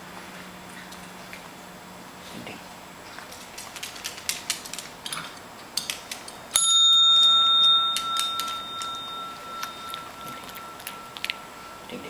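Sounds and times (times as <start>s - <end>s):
desk bell ding: 6.6s - 12.0s.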